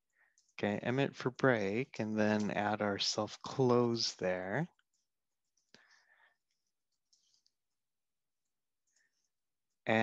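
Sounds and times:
man's voice: 0.6 - 4.7.

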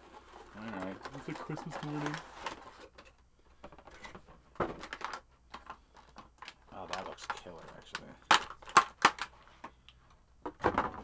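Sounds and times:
packaging rustling and clicking: 0.0 - 10.0.

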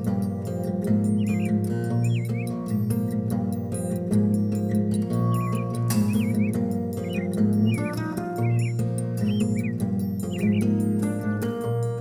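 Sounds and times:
calm music with sustained notes: 0.0 - 12.0
short bird chirps: 1.1 - 2.6, 4.7 - 10.8.

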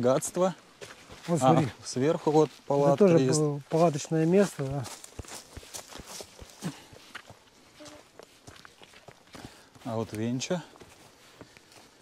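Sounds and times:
footsteps crunching on forest path: 0.0 - 12.0.

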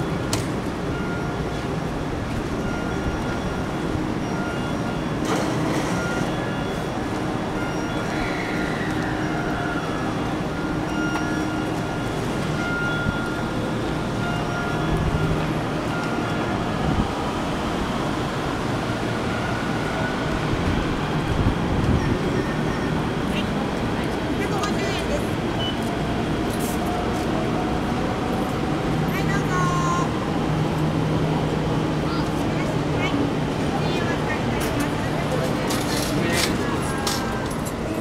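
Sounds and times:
train station rumble and hum: 0.0 - 38.0.

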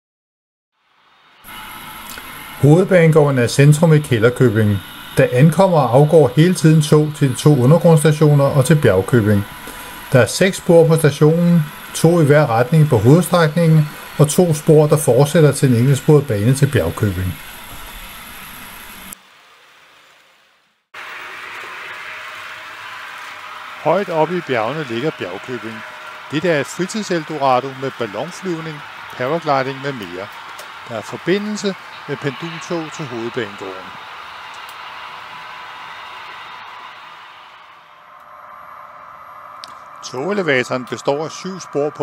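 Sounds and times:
steady hiss: 0.8 - 19.2, 21.0 - 42.0
model trains running: 1.4 - 19.2, 21.0 - 42.0.

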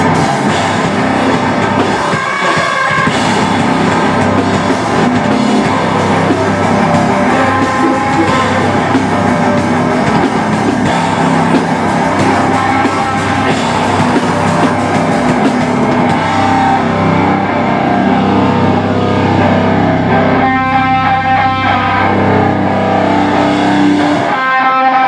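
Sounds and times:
guitar ringing alone: 0.0 - 25.0
hardcore band playing live: 0.0 - 25.0.

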